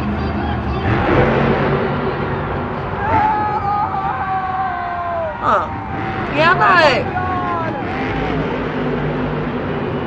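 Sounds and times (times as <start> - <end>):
truck engine: 0.0 - 10.0
crowd roaring: 2.2 - 9.4
long high yell: 3.0 - 5.9.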